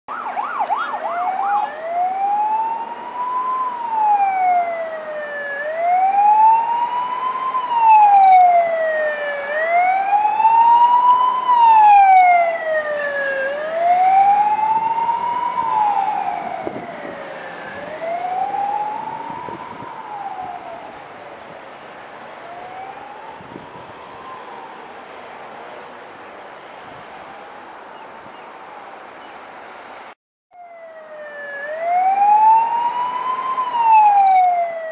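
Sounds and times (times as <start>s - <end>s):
ambulance siren: 0.1s - 27.9s, 30.5s - 34.9s.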